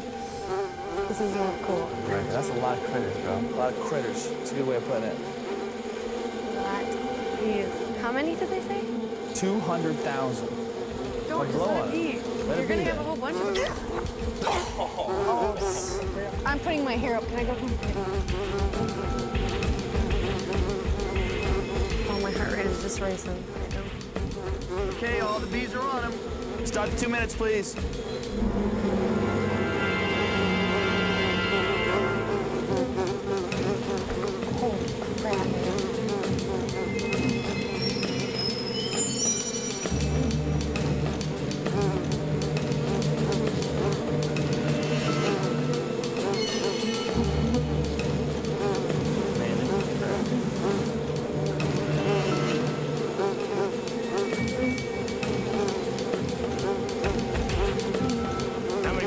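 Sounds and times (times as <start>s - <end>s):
honeybee swarm buzzing: 0.0s - 59.0s
dramatic music with bass notes: 15.6s - 53.4s, 54.3s - 59.0s.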